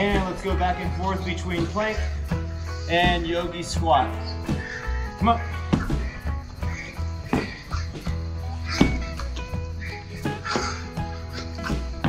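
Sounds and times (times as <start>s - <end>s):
background music with pulsing bass: 0.0s - 12.0s.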